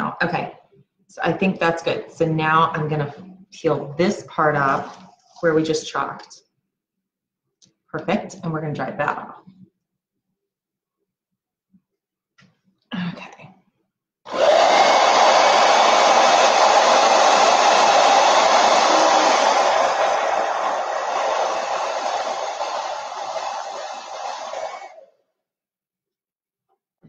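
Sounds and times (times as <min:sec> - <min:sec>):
hair dryer running: 0:14.3 - 0:25.0.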